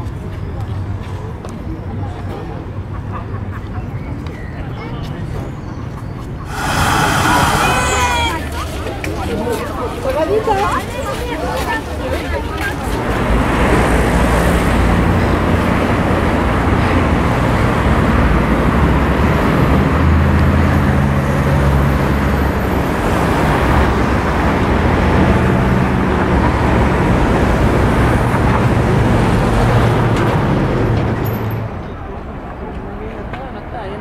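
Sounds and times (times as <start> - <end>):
road traffic passing: 6.2 - 33.8.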